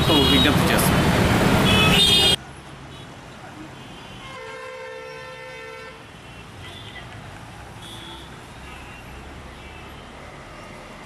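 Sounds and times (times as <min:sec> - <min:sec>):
street traffic: 0:00.0 - 0:11.0
vehicle horn blast: 0:01.6 - 0:02.4.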